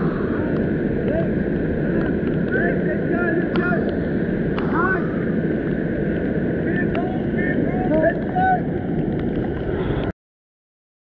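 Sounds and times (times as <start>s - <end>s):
breaking surf: 0.0s - 10.1s
wind buffeting microphone: 0.0s - 10.1s.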